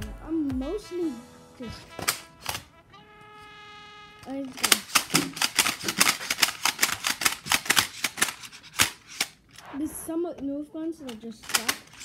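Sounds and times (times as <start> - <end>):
rapid plastic toy clicking: 2.0 - 2.6, 4.2 - 9.6, 11.0 - 12.0.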